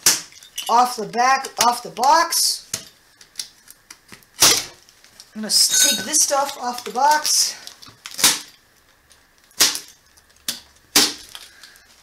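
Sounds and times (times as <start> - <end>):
packing tape ripping off cardboard: 6.8 - 11.8.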